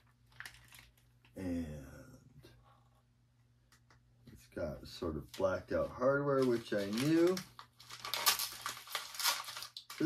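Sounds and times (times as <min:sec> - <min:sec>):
small clicks and rustling: 0:00.0 - 0:01.3.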